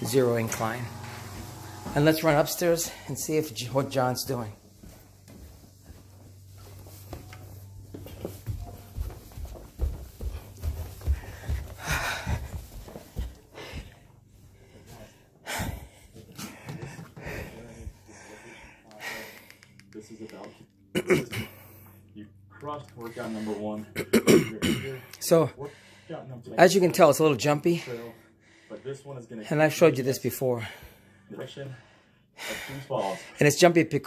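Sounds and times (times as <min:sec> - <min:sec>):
footstep thuds on carpeted stairs: 0:04.7 - 0:14.0
man panting heavily: 0:09.8 - 0:19.6, 0:25.6 - 0:26.3, 0:30.5 - 0:33.4.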